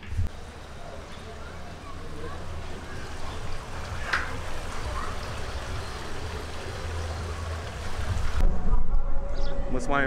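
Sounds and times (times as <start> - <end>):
outdoor background noise: 0.0 - 10.0.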